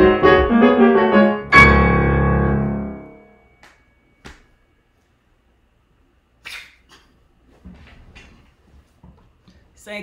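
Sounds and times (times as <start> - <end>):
grand piano chord ringing: 0.0 - 3.6.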